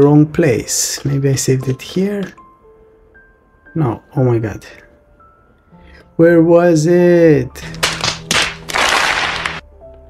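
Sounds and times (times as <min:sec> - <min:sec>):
background music: 0:00.0 - 0:10.0
hands slapping foreheads: 0:07.6 - 0:09.6.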